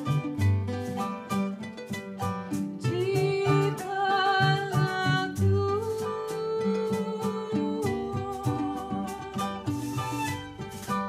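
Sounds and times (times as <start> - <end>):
string band playing: 0.0 - 11.0.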